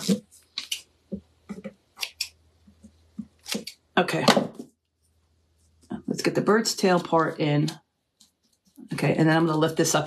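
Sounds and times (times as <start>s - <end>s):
scissors snipping paper: 3.3s - 3.8s.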